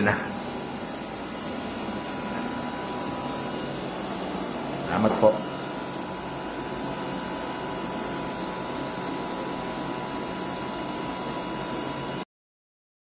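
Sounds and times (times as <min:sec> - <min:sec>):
faint high whine: 0:00.0 - 0:12.2
machine hum and hiss: 0:00.0 - 0:12.2.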